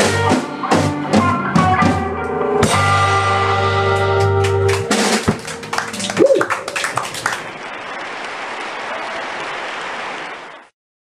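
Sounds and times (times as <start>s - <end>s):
live band playing: 0.0s - 7.5s
audience applauding: 4.2s - 10.7s.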